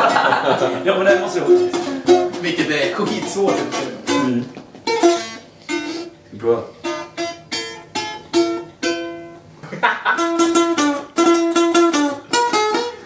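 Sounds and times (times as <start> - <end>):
balalaika plucked: 1.1 - 6.2, 6.8 - 13.0.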